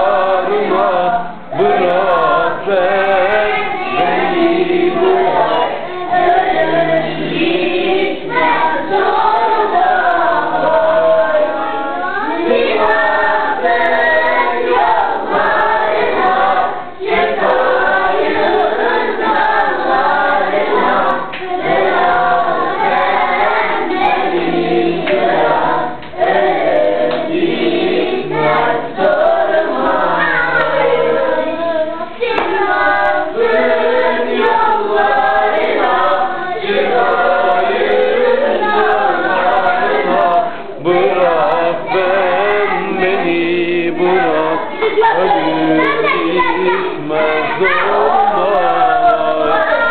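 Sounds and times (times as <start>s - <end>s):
children singing together: 0.0s - 49.9s.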